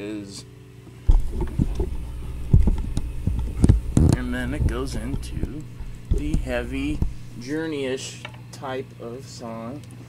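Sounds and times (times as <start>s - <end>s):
low thumps: 1.1s - 7.9s.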